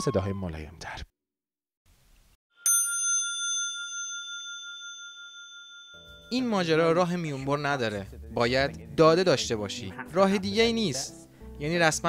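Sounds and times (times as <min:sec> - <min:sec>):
bicycle bell ding: 0:02.6 - 0:06.5.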